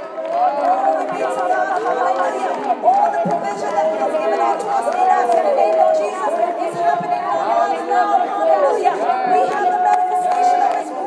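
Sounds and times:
voices praying aloud: 0.0s - 11.0s.

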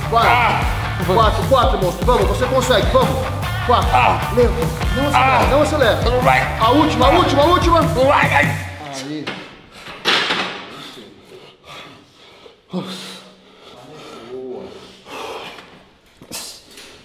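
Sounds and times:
man groaning: 0.0s - 1.0s, 3.6s - 8.2s
man breathing hard: 10.6s - 17.0s.

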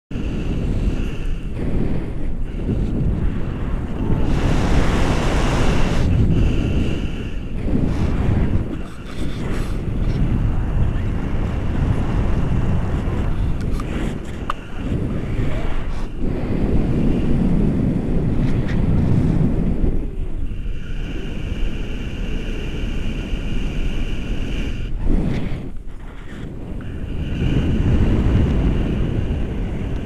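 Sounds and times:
wind buffeting microphone: 0.1s - 30.0s.

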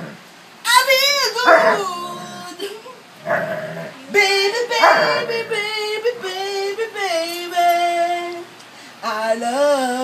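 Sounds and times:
dog howling: 1.4s - 2.5s, 4.7s - 5.6s.

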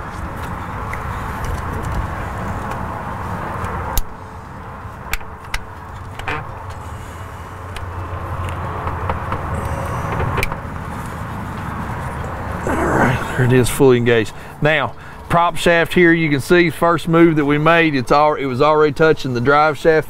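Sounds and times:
steady background noise: 0.0s - 20.0s.

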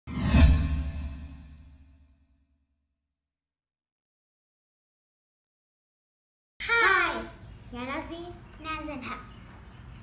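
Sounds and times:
whoosh with deep boom: 0.1s - 2.4s.

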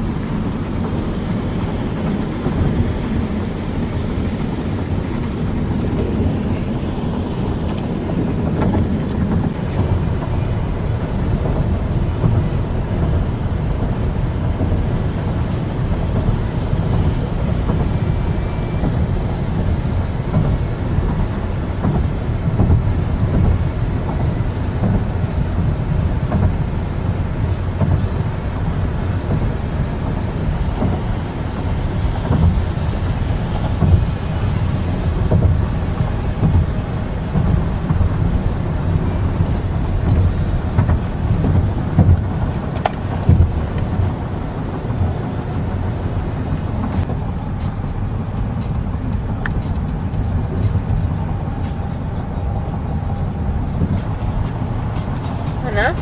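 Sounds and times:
car radio music: 0.0s - 56.0s
car road and engine noise: 0.0s - 56.0s.

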